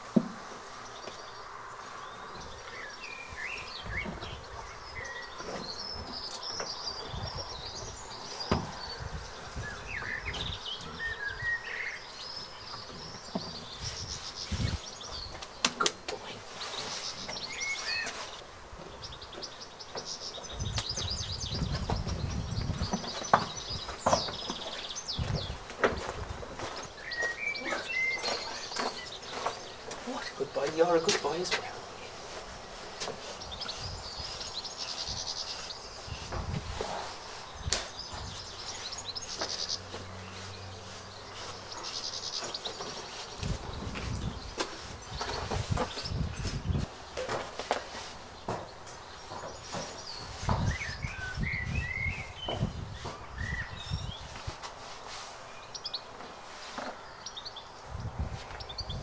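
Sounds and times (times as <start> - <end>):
small birds chirping: 0.1 - 59.0.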